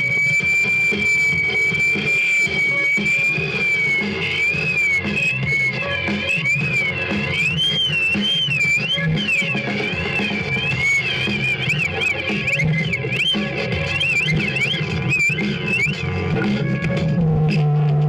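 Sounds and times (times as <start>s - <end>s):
high wavering electronic tone: 0.0s - 17.2s.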